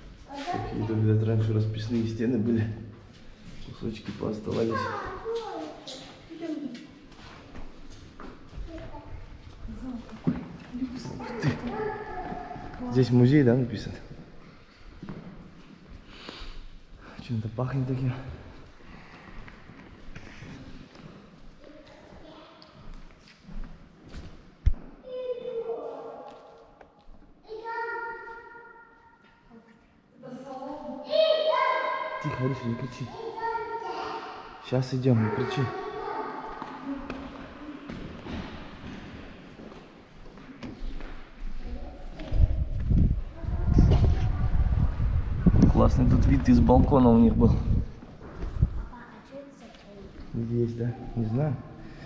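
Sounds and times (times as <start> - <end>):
footsteps: 0.0 - 1.0, 1.7 - 27.4, 35.2 - 52.0
child's high-pitched voice: 0.3 - 0.9, 4.7 - 6.9, 8.6 - 10.0, 11.1 - 12.9, 21.6 - 22.8, 25.0 - 26.6, 27.4 - 28.7, 30.3 - 32.2, 33.0 - 34.6, 35.2 - 37.8, 41.6 - 45.0, 48.8 - 50.2
faint echoing voices: 27.4 - 39.3
wind rumble on microphone: 41.8 - 48.9.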